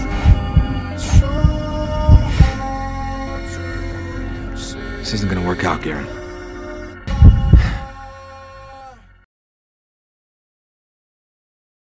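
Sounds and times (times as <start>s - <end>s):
music: 0.0s - 9.3s
deep double thumps: 0.3s - 2.6s, 7.1s - 7.8s.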